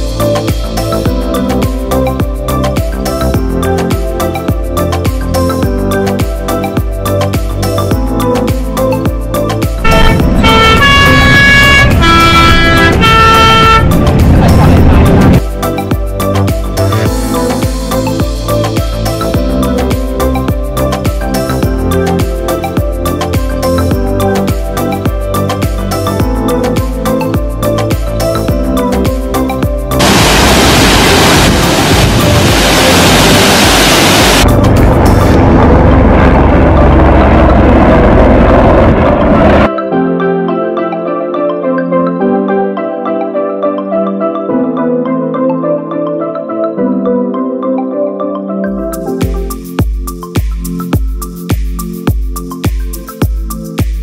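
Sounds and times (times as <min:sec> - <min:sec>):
background music with beat: 0:00.0 - 0:35.7, 0:39.6 - 0:54.0
multi-tone vehicle horn: 0:09.8 - 0:14.2
waterfall rushing: 0:30.0 - 0:34.5.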